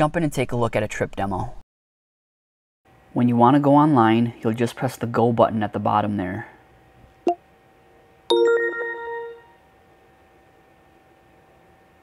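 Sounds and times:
bright multi-tone chime: 8.3s - 9.6s.

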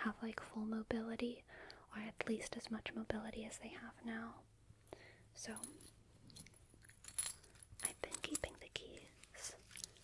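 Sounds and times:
keys clinking on a key ring: 5.5s - 10.0s.

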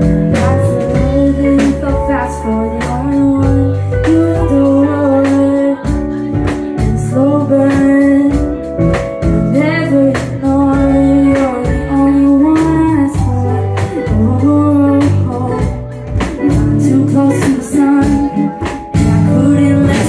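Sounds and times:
rock band playing: 0.0s - 20.0s.

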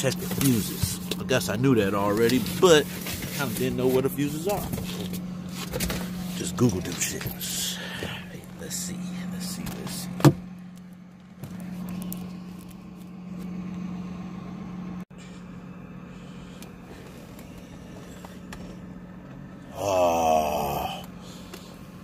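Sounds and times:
car engine idling: 0.0s - 22.0s
man groaning: 19.7s - 21.2s.

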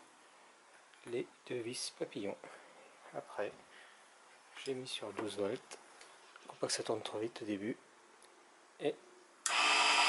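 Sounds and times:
lathe motor whine: 9.5s - 10.0s.

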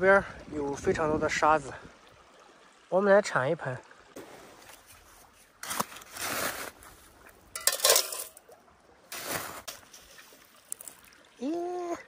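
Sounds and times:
plastic scoop digging into sand and gravel: 5.6s - 7.0s, 9.1s - 11.0s.

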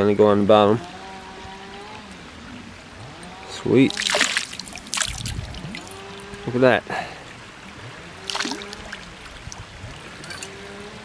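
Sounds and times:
water trickling: 1.5s - 11.0s.

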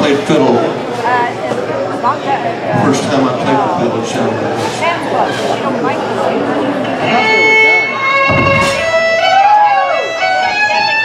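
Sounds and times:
guitar: 6.8s - 11.0s
live country band playing: 6.9s - 11.0s
thump: 8.3s - 9.1s.

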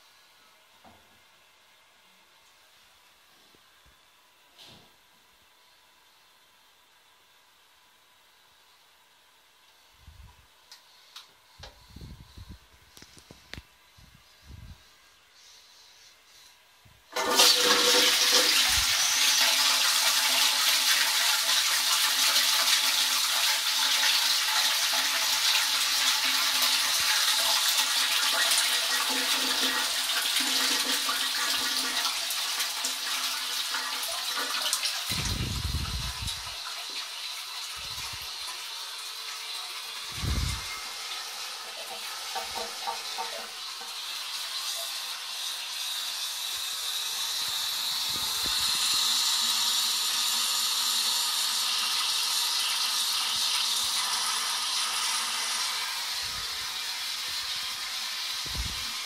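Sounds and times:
toilet flushing: 17.1s - 59.0s.

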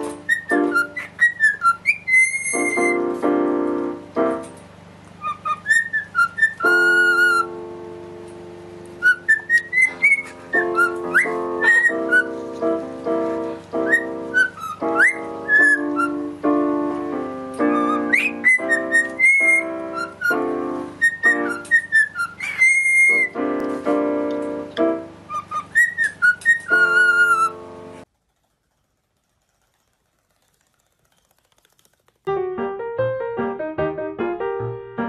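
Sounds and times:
electronic keyboard chords: 0.0s - 1.2s, 6.6s - 21.7s
cockatiel whistling: 0.0s - 3.2s, 5.2s - 7.5s, 9.0s - 12.4s, 13.8s - 16.3s, 17.6s - 23.4s, 25.3s - 27.6s.

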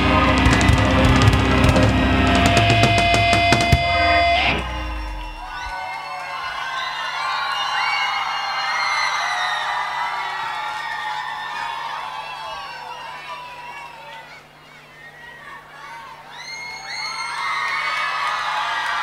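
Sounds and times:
cymbal crashes: 0.0s - 5.7s
live band final chord: 0.0s - 5.7s
crowd clapping: 0.0s - 14.0s, 16.8s - 19.0s
crowd cheering and screaming: 0.0s - 19.0s.

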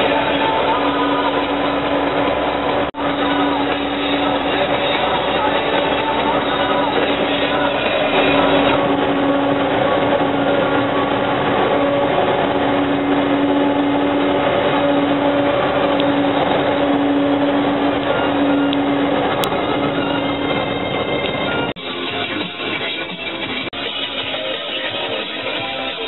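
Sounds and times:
droning hum: 0.0s - 22.5s
truck driving through tunnel: 0.0s - 26.0s.

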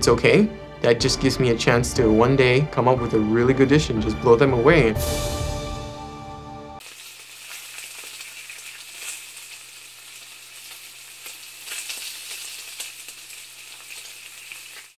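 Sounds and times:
crackling hiss: 6.8s - 15.0s.

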